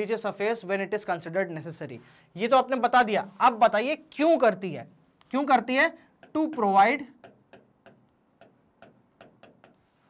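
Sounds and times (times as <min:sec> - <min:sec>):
stylus tapping on display: 0:06.2 - 0:09.9.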